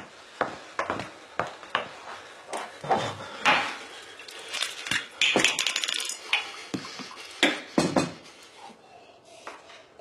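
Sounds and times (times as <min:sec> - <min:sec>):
ice cubes clinking in glass: 0:04.5 - 0:06.3.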